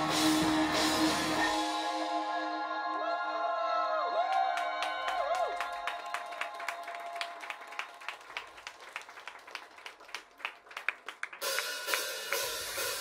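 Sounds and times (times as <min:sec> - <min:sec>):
bright cymbal wash: 0:11.4 - 0:13.0.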